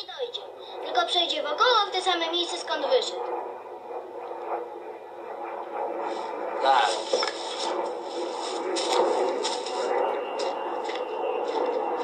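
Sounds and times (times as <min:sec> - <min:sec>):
muffled old film soundtrack: 0:00.0 - 0:12.0.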